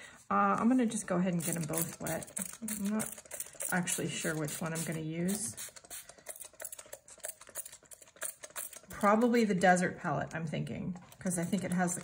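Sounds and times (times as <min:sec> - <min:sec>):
spray bottle spritzing: 0:01.4 - 0:09.3.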